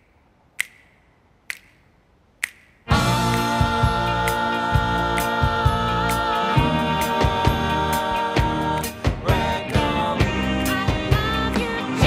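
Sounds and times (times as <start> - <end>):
finger snaps: 0.0 - 3.6.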